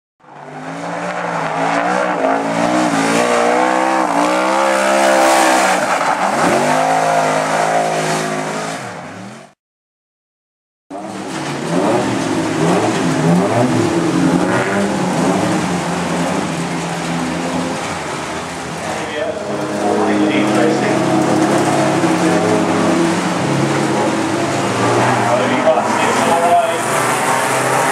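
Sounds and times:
car engines revving: 0:00.2 - 0:09.6, 0:10.9 - 0:27.9.

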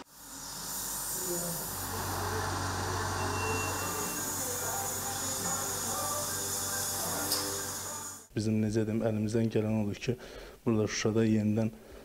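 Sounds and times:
high whine: 0:00.0 - 0:08.2
dental equipment hissing: 0:00.0 - 0:08.3.

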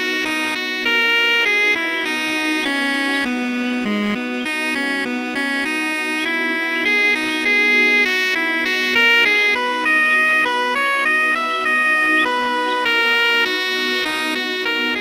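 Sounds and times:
saxophone melody: 0:00.0 - 0:15.0
low held drone: 0:00.3 - 0:15.0.

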